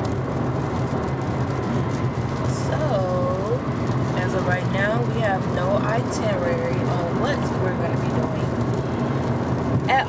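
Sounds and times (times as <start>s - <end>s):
car engine: 0.0s - 10.0s
road noise: 0.0s - 10.0s.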